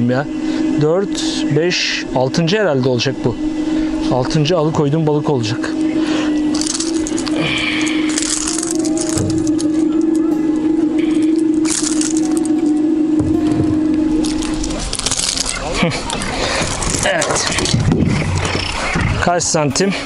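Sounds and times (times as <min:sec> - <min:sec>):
motor hum: 0:00.0 - 0:20.0.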